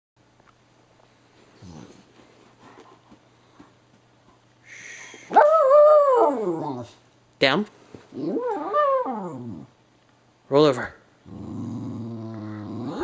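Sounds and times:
faint low dog sounds: 0:01.4 - 0:04.4, 0:11.2 - 0:13.0
dog howling: 0:05.3 - 0:07.0, 0:08.2 - 0:09.7.

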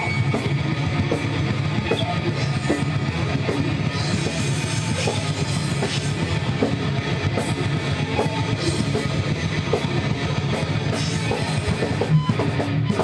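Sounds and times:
electric guitar: 0:00.0 - 0:13.0
live rock band playing: 0:00.0 - 0:13.0.

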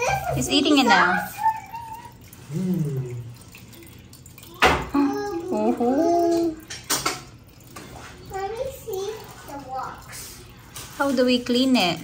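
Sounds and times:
aquarium filter water trickle: 0:00.0 - 0:12.0.

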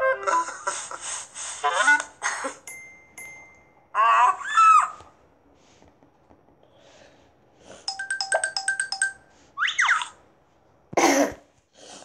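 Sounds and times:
bright chiming notes: 0:02.7 - 0:03.9, 0:07.9 - 0:09.3.

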